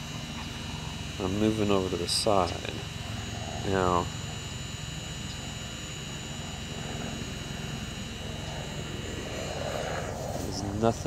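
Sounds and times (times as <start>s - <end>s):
drone propellers whining: 0.0s - 11.0s.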